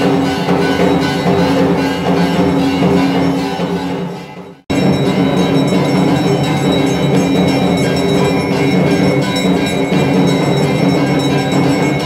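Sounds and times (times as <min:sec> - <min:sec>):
devotional music drums: 0:00.0 - 0:12.0
ringing metal bells: 0:00.0 - 0:12.0.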